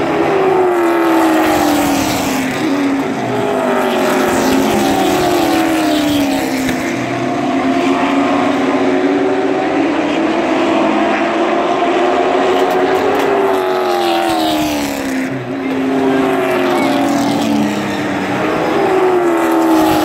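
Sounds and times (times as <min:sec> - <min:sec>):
race car engines: 0:00.0 - 0:20.0
race cars passing close by: 0:00.0 - 0:20.0.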